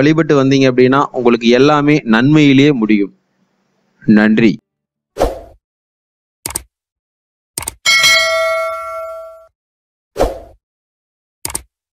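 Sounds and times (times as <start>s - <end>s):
bright bell ding: 7.9s - 9.5s
quick clicks: 11.4s - 11.7s.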